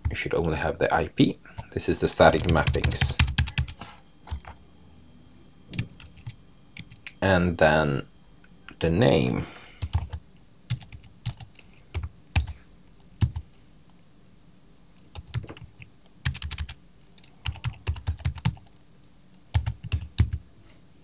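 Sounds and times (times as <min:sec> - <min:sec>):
typing on keyboard: 0:02.3 - 0:04.6, 0:05.7 - 0:07.0, 0:09.8 - 0:12.6, 0:13.2 - 0:13.4, 0:15.0 - 0:18.8, 0:19.5 - 0:20.4.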